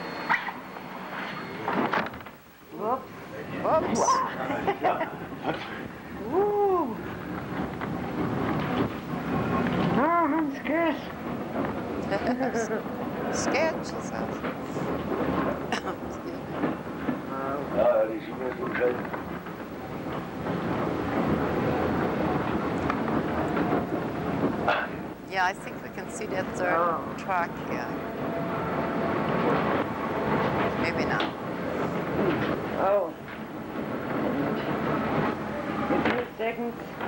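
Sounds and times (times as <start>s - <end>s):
railway carriage rumbling: 0.0s - 37.0s.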